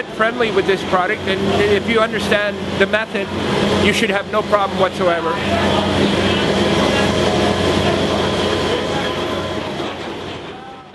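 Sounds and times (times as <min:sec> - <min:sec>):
loud rushing noise: 0:00.0 - 0:10.9
low droning hum: 0:00.0 - 0:10.9.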